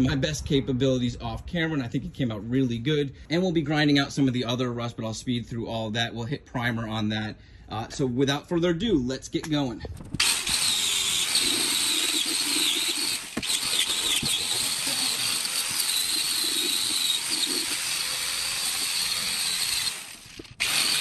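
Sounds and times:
angle grinder wire brush scraping: 10.2s - 21.0s.

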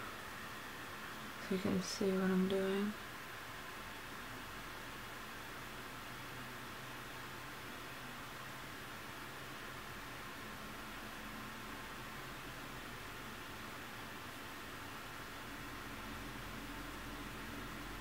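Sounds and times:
faint steady hiss: 0.0s - 18.0s.

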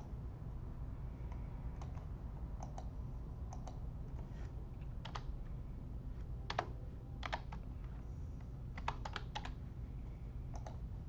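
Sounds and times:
steady low hum: 0.0s - 11.0s
typing on computer keyboard: 5.0s - 5.3s, 6.5s - 7.6s, 8.8s - 9.6s, 10.5s - 10.8s.

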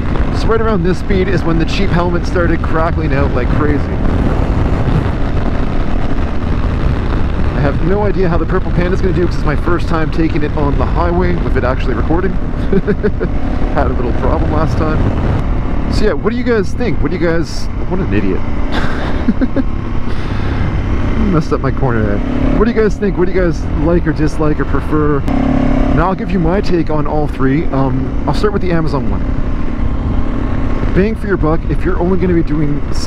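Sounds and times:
wind noise on microphone: 0.0s - 16.9s, 18.8s - 23.8s, 29.0s - 33.0s
motorcycle engine running: 0.0s - 33.0s
short laugh: 18.7s - 20.3s.

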